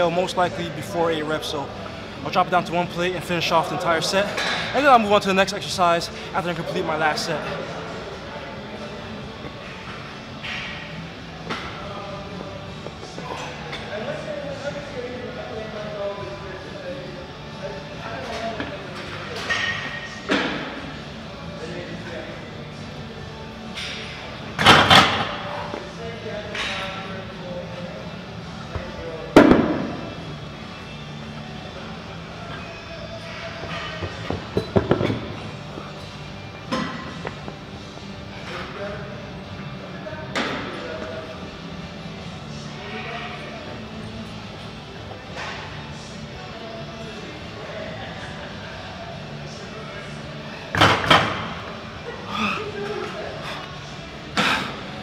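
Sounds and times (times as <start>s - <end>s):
gym background music: 0.0s - 55.0s.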